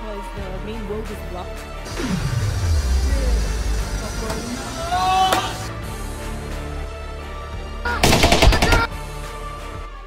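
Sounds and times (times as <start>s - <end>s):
background music: 0.0s - 10.0s
automatic gunfire burst: 8.0s - 8.9s.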